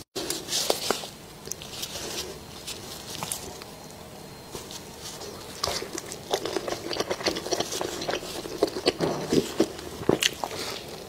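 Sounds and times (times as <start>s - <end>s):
biting and chewing food: 0.2s - 11.0s
sharp crunches: 5.2s - 11.0s.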